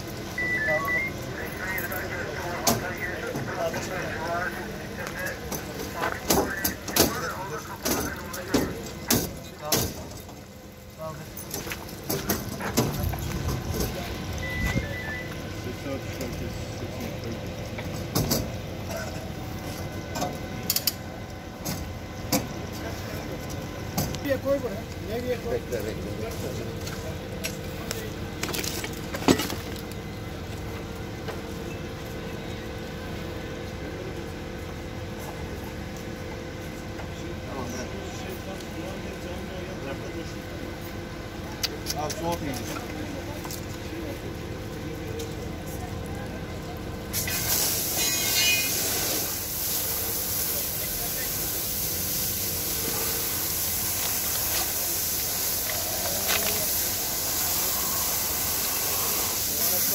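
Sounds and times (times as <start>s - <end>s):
people talking indistinctly: 0.4s - 17.7s
sharp metallic clank: 47.9s - 48.8s.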